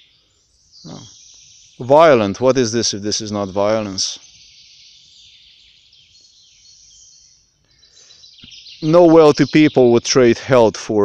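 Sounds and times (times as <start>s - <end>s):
distant bird chirps: 0.0s - 11.0s.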